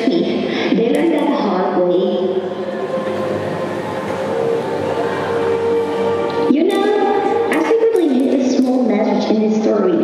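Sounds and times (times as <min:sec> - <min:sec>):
droning held tones: 0:01.6 - 0:08.4.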